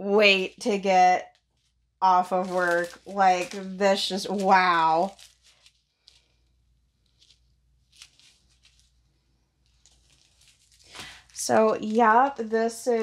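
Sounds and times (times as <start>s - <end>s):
plastic packaging crinkling: 0.3s - 13.0s.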